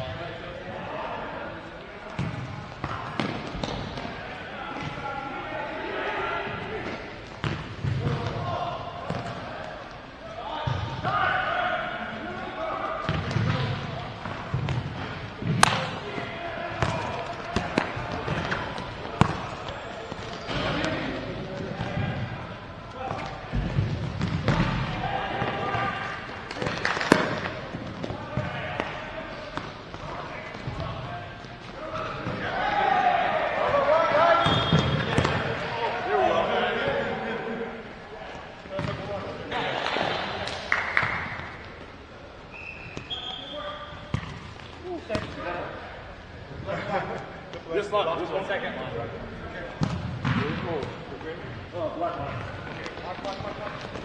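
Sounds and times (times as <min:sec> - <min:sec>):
ball kicked and bouncing on court: 0:02.1 - 0:04.1, 0:06.8 - 0:09.5, 0:13.0 - 0:22.4, 0:23.0 - 0:32.4, 0:34.4 - 0:35.6, 0:38.7 - 0:39.3, 0:44.0 - 0:45.4, 0:49.8 - 0:51.0
players shouting: 0:02.8 - 0:07.2, 0:07.8 - 0:14.2, 0:15.0 - 0:38.2.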